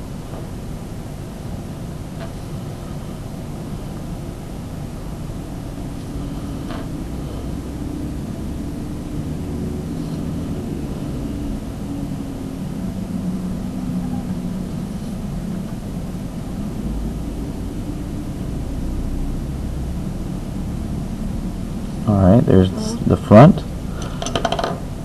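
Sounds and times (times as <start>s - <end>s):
steady low rumble: 0.0s - 24.0s.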